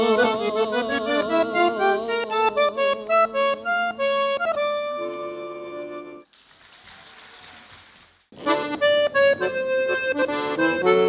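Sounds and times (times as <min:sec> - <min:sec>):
accordion chord: 0:00.0 - 0:06.3, 0:08.4 - 0:11.0.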